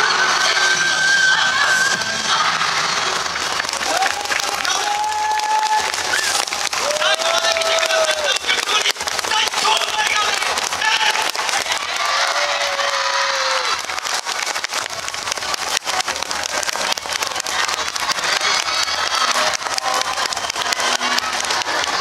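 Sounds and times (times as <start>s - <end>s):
music: 0.0s - 12.4s, 13.5s - 22.0s
people clapping: 1.6s - 22.0s.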